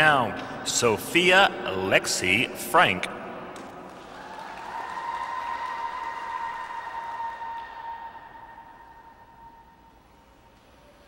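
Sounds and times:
spectators applauding and cheering: 3.5s - 9.6s.

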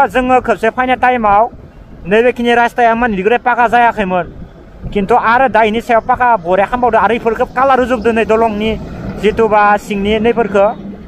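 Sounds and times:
motor scooter rumbling: 0.0s - 11.0s.

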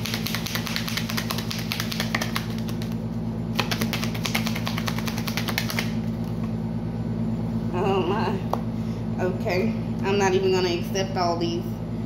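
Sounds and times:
cards being shuffled: 0.0s - 3.0s, 3.6s - 6.4s.

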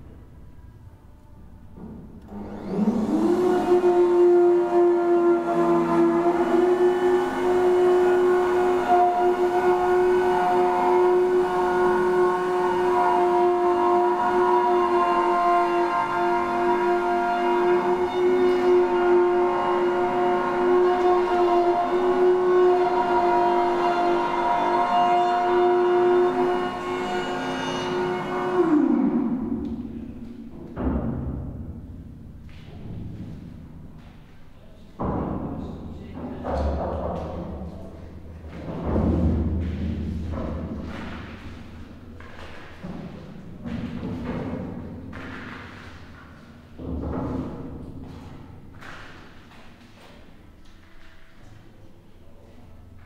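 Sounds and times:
machine hum: 0.0s - 53.0s.

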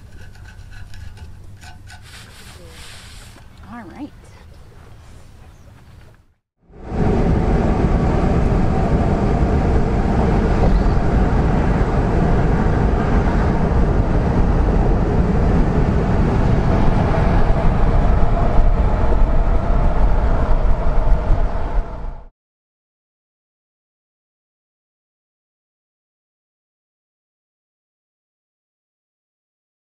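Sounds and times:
road and engine rumble: 0.0s - 22.3s.

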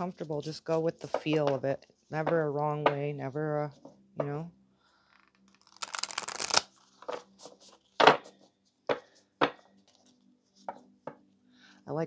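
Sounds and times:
cards being shuffled: 5.2s - 9.1s.

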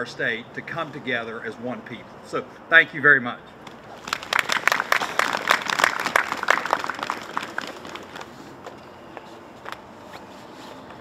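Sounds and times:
audience applauding: 4.0s - 8.4s.

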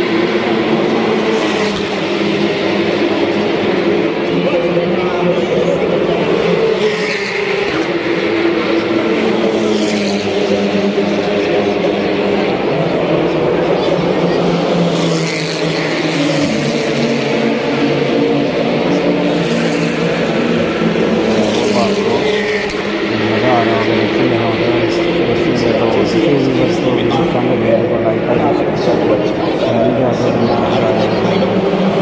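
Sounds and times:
crowd chatter: 0.0s - 32.0s
race car engines passing: 0.0s - 32.0s.

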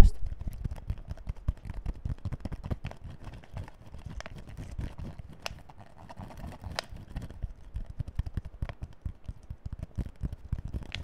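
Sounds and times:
plastic bottle crackling: 0.1s - 11.0s.

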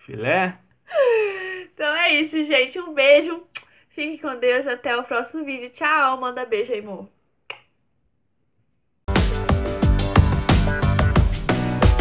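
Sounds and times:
lip smack of blown kiss: 3.5s - 3.7s, 7.4s - 7.8s.

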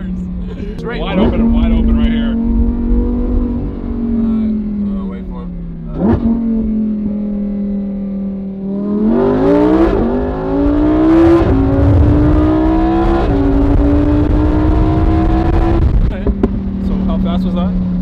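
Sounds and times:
sports car engine accelerating: 0.0s - 18.0s.

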